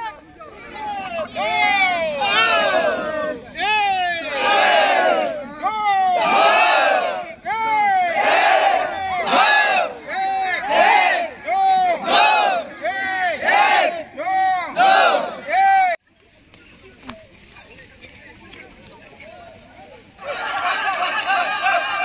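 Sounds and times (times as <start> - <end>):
group shouting in unison: 0.9 - 16.0.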